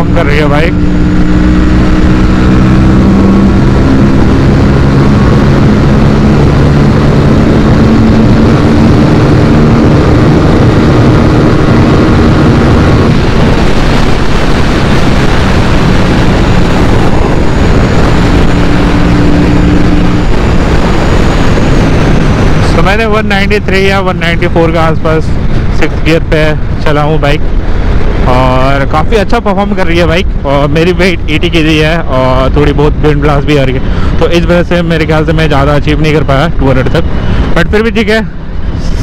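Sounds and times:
motorcycle engine at high revs: 0.0 - 29.7
wind rush: 0.0 - 39.0.

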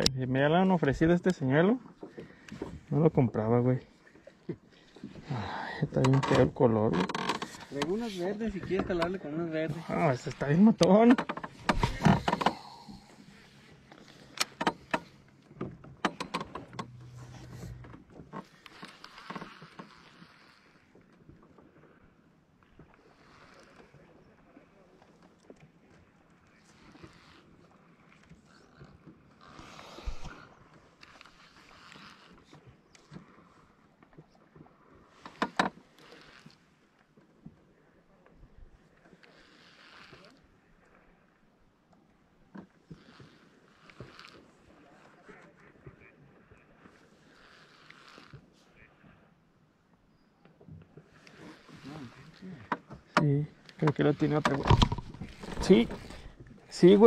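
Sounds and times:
fishing reel clicks and knocks: 15.9 - 18.0.

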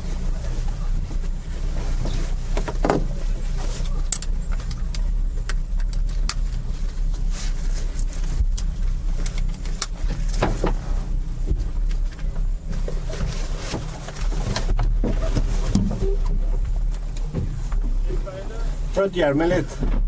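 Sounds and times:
boat engines idling: 0.0 - 20.0.

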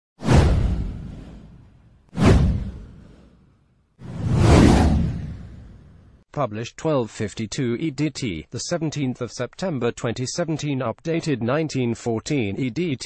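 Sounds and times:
whoosh sound effects: 0.2 - 3.4, 4.0 - 6.1.

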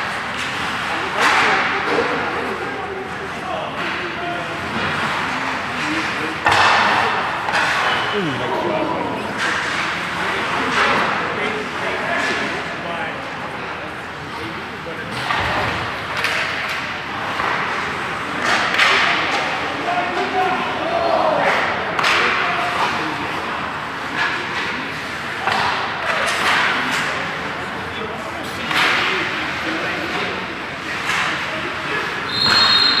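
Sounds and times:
indistinct voices: 1.3 - 12.7
hockey sticks cracking pucks: 15.2 - 19.5, 21.4 - 27.7.

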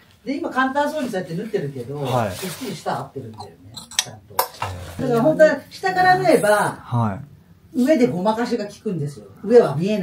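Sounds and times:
person speaking: 2.0 - 7.2.

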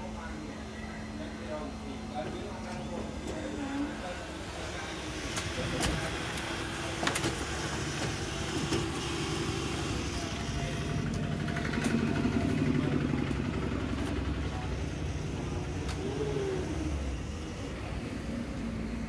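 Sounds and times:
printer whirring: 0.0 - 19.0.

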